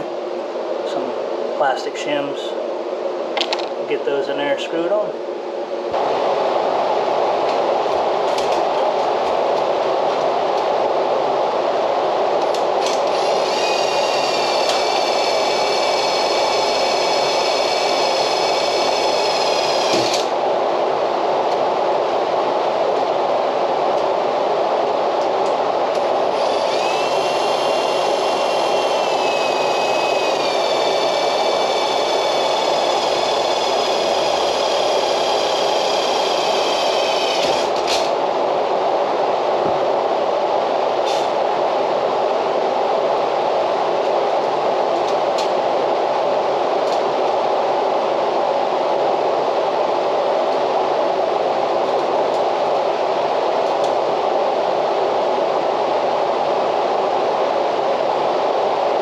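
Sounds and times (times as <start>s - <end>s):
loud background noise: 0.0s - 59.0s
cordless driver motor whining: 26.4s - 38.1s.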